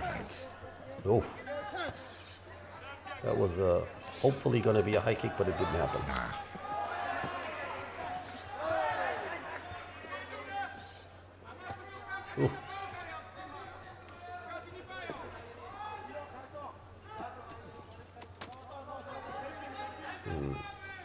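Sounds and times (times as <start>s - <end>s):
crowd shouting: 4.6s - 10.8s.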